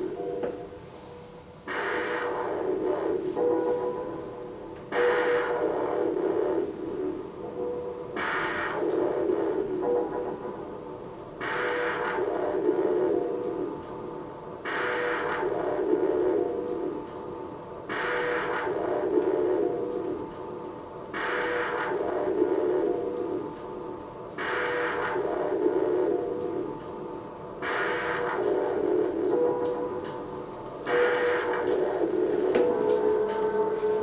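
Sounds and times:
steady musical drone: 0.0s - 34.0s.

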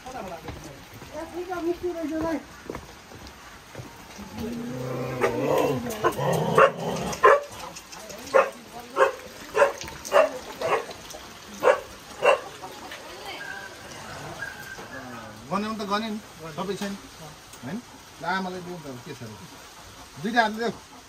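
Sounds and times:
voices: 3.6s - 21.0s
dog barking: 6.0s - 7.6s, 8.3s - 11.0s, 11.6s - 12.5s.

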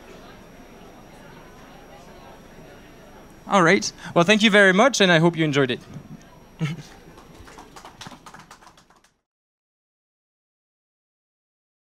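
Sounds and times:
audience applause: 6.6s - 9.2s.

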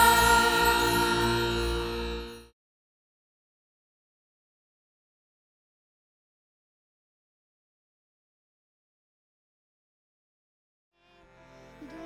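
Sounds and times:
logo intro music: 0.0s - 2.5s.

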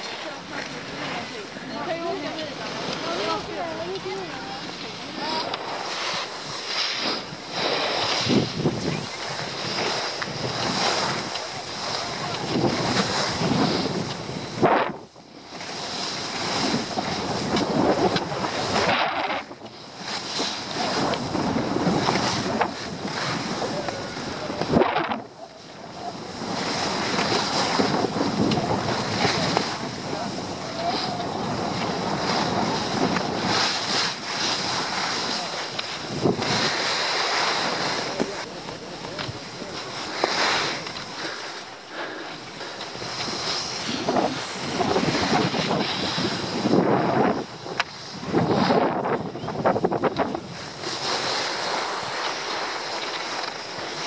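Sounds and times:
skis scraping over snow: 0.0s - 54.0s
wind buffeting microphone: 0.0s - 54.0s.

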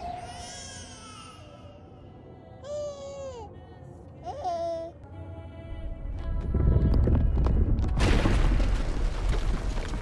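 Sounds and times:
deep rumble: 5.8s - 10.0s.

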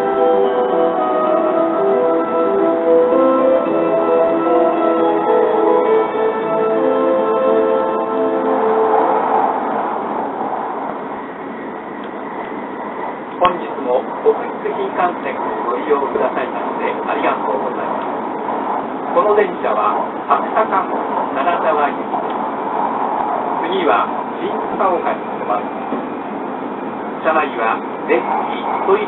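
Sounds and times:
announcement chime: 0.0s - 8.8s
recorded onboard announcement: 0.0s - 29.0s
train running noise inside cabin: 0.0s - 29.0s.

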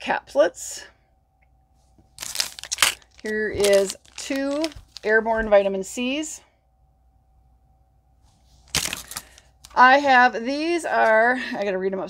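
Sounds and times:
packaging crinkling and rustling: 2.0s - 5.5s, 8.6s - 9.8s.

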